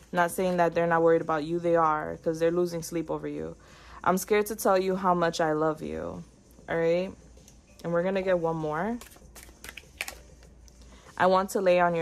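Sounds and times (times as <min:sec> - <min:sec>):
card clicks and flicks: 0:09.0 - 0:10.2
cards being shuffled: 0:09.0 - 0:10.3.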